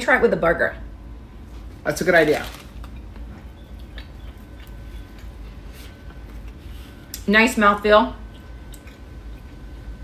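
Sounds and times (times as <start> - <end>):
low room hum: 0.0 - 10.0
soft chewing: 2.4 - 7.3, 8.2 - 10.0.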